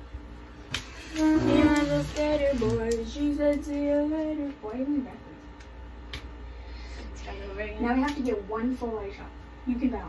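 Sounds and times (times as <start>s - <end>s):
woman singing: 1.0s - 5.4s.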